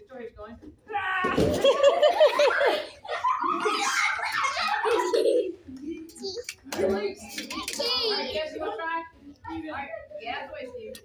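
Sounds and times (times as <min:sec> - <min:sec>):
child giggling: 0:01.6 - 0:06.4
children chattering: 0:02.2 - 0:11.0.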